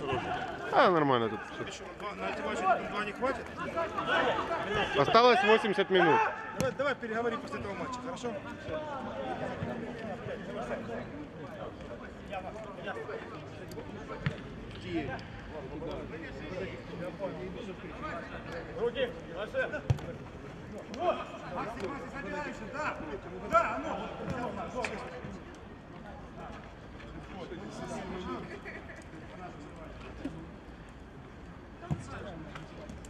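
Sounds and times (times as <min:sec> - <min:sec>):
men talking and calling: 0:00.0 - 0:30.6.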